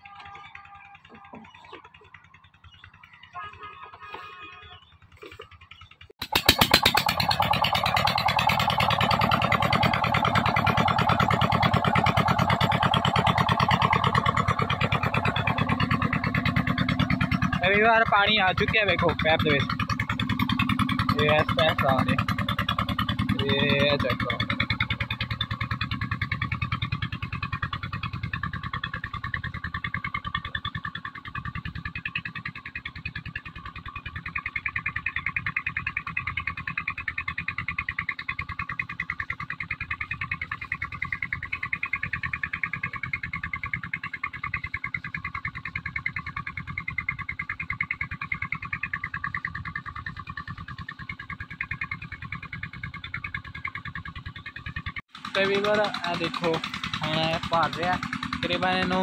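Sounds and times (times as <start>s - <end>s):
engine chugging: 0.0s - 59.0s.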